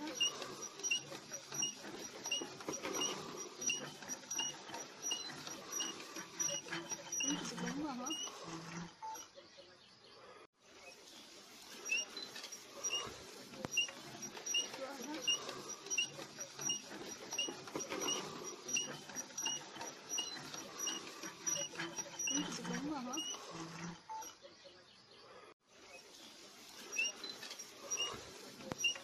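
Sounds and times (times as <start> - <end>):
hand crank squeaking: 0.0 - 9.4, 10.8 - 24.4, 25.9 - 29.0.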